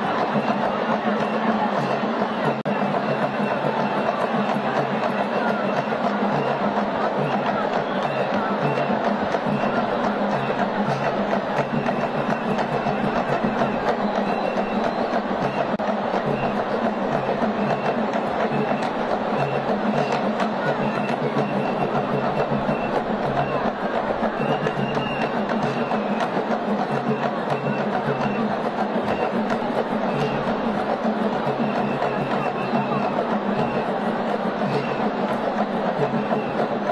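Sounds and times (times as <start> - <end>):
drums and percussion rhythm: 0.0 - 36.9
voices: 0.0 - 36.9.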